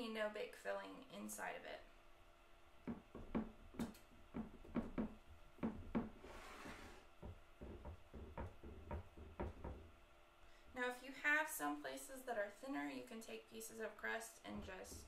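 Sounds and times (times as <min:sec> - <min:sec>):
rustling scrape: 0:06.2 - 0:07.1.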